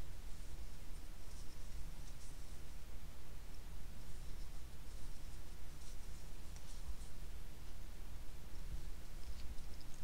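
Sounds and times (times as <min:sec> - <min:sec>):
crochet hook scratching yarn: 0:00.0 - 0:02.8, 0:04.0 - 0:07.2
steady low hum: 0:00.0 - 0:10.0.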